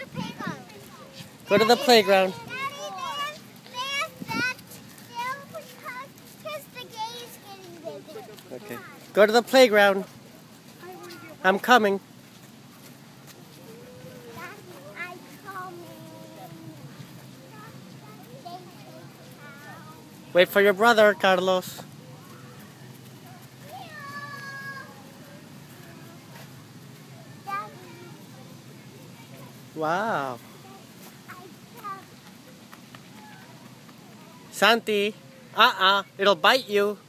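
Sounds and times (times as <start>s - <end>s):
outdoor background noise: 0.0s - 37.0s
child's high-pitched vocal sound: 13.5s - 18.8s, 23.7s - 25.0s
child singing: 23.8s - 25.0s.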